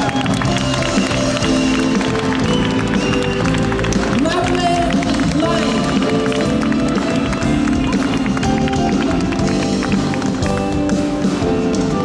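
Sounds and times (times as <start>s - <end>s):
live pop band music: 0.0s - 12.0s.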